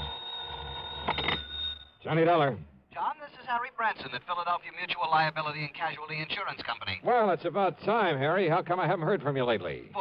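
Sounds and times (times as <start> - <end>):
telephone bell ringing: 0.0 - 2.0.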